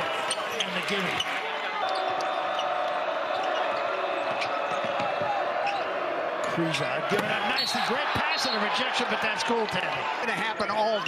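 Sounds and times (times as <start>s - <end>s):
arena crowd: 0.0s - 11.0s
sneakers squeaking: 0.2s - 5.0s.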